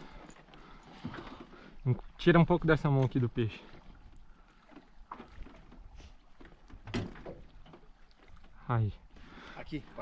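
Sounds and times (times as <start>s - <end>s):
water sounds from hull: 0.0s - 10.0s
faint knocks on hull: 4.6s - 8.5s.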